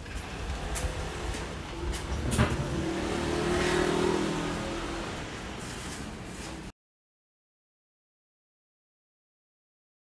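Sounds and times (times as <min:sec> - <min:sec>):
vehicle engine passing by: 0:00.0 - 0:06.7.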